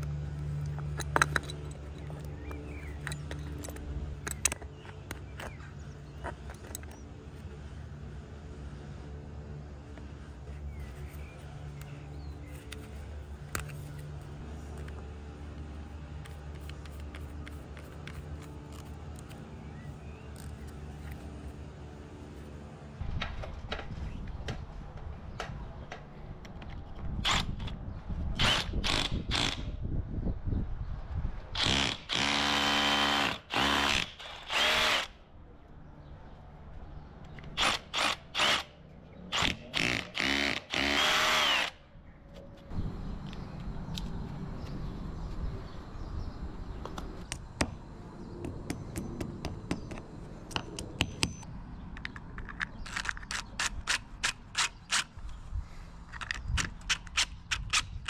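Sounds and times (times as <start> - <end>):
power drill drilling into wall: 31.6 - 35.1, 39.4 - 41.8.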